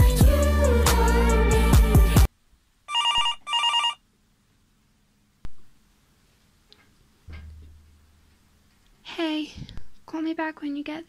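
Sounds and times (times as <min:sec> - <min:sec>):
music: 0:00.0 - 0:02.3
electronic telephone ringing: 0:02.9 - 0:04.0.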